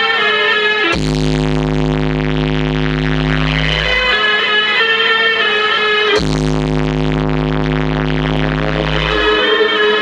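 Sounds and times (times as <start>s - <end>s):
dance music with held chord: 0.0s - 10.0s
deep steady bass drone: 0.9s - 4.2s, 6.1s - 10.0s.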